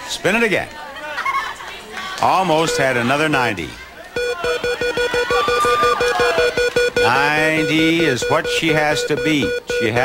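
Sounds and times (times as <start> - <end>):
prize wheel clicking: 4.2 - 10.0.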